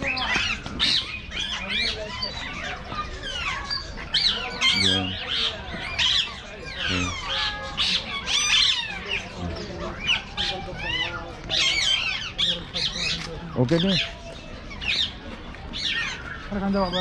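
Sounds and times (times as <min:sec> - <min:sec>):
caged birds squawking and whistling: 0:00.0 - 0:17.0.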